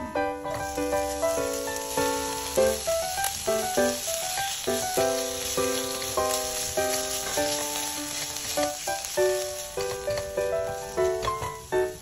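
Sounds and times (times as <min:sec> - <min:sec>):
background music held notes: 0:00.0 - 0:12.0
fish sizzling in oil: 0:00.4 - 0:12.0
spatula stirring in pan: 0:00.5 - 0:12.0.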